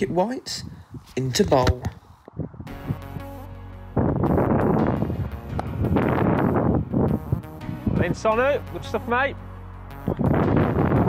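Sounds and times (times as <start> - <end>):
wind buffeting microphone: 0.0 - 8.4, 10.0 - 11.0
background music: 2.6 - 11.0.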